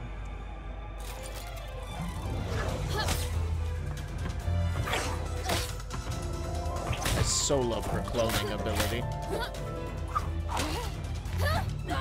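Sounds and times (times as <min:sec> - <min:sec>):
soundtrack music: 0:00.0 - 0:12.0.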